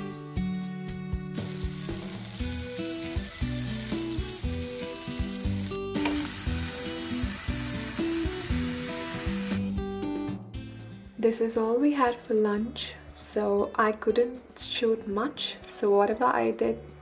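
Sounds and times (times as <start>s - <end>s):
background music: 0.0s - 17.0s
food sizzling in oil: 1.3s - 9.6s.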